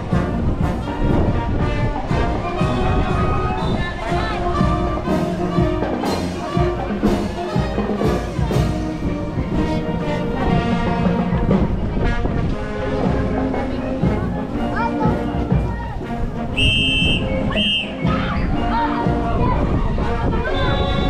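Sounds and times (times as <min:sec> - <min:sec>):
brass band with drums: 0:00.0 - 0:21.0
voices: 0:00.0 - 0:21.0
shrill whistle blasts: 0:16.6 - 0:18.5.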